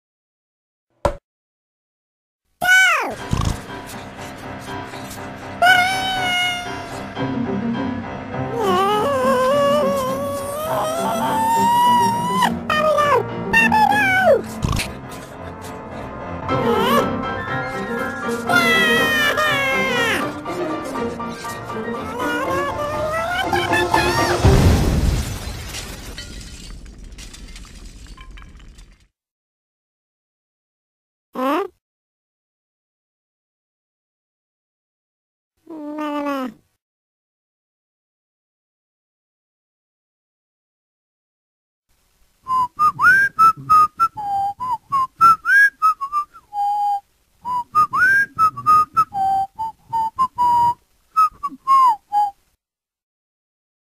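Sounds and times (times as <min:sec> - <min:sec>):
glass breaking: 0:24.4 - 0:29.1
glass pieces clinking: 0:25.4 - 0:29.1
person whistling a tune: 0:42.5 - 0:52.4.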